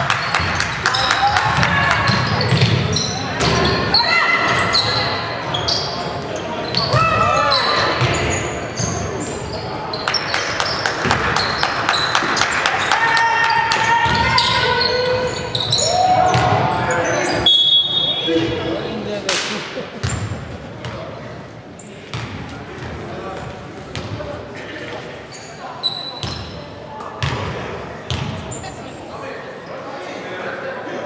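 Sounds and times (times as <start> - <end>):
ball bouncing on wooden court: 1.5 - 3.8, 13.7 - 14.6, 27.2 - 27.5, 28.1 - 28.4
sneaker squeaks: 1.8 - 18.8, 20.0 - 21.0, 21.8 - 22.9, 24.8 - 27.5, 28.1 - 29.9
players shouting: 12.4 - 17.5.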